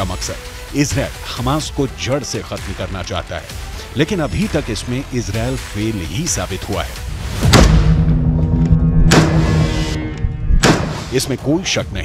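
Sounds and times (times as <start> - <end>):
low music drone: 7.0 - 11.2
loud sudden blasts: 7.4 - 11.2.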